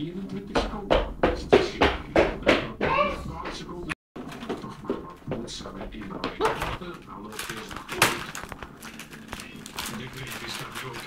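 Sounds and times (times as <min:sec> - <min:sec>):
plastic wrapper crinkling: 0:07.1 - 0:11.0.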